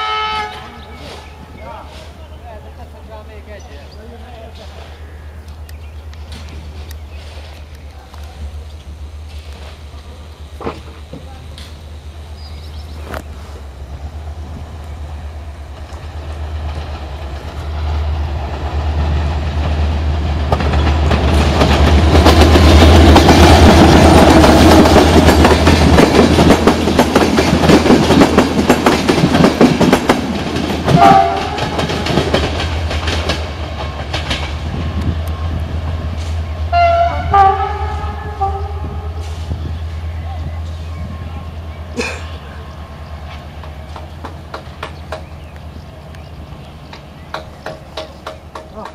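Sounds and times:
train horn: 0:00.0 - 0:01.2, 0:30.9 - 0:31.9, 0:36.7 - 0:39.5
wheels clattering over rail joints: 0:46.2 - 0:48.9.

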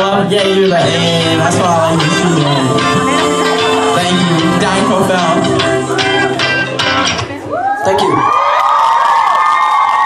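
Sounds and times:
crowd screaming and cheering: 0:02.4 - 0:10.0.

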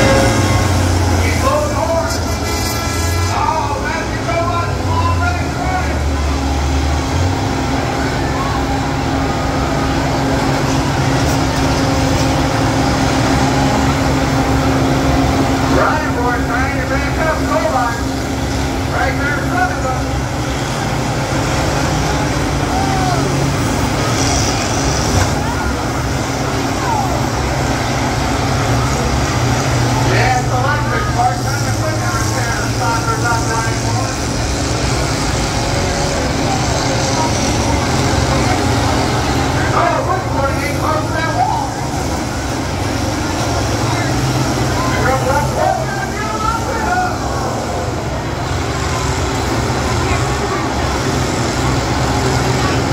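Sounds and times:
diesel engines droning: 0:00.0 - 0:52.9
voices: 0:00.0 - 0:52.9.

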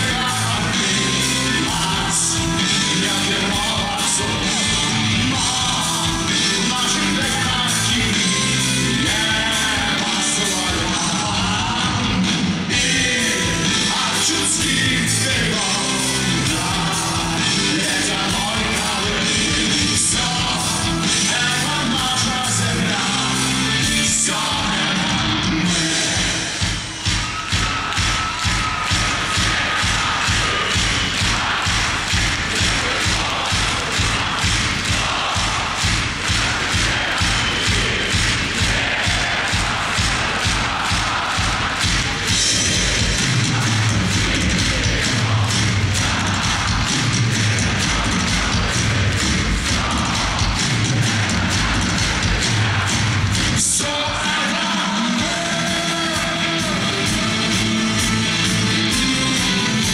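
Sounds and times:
low bass notes: 0:00.0 - 0:26.3, 0:29.7 - 0:53.9
crowd: 0:00.0 - 0:59.9
driving drum beat: 0:00.0 - 0:59.9
rock band playing live: 0:00.0 - 0:59.9.

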